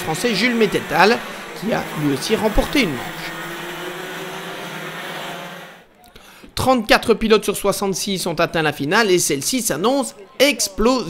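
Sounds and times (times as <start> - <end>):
kart engines droning: 0.0 - 5.9.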